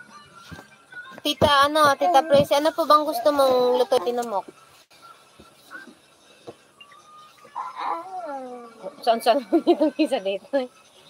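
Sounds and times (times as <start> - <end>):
animal crying: 7.5 - 9.0.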